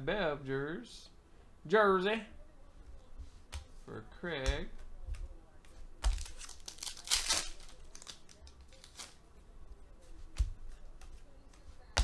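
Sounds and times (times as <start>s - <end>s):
cards and foil wrappers crinkling: 6.0s - 9.2s.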